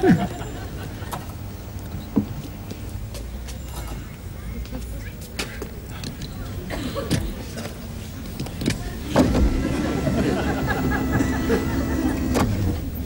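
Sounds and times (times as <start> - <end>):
machinery whirring: 6.0 - 13.0.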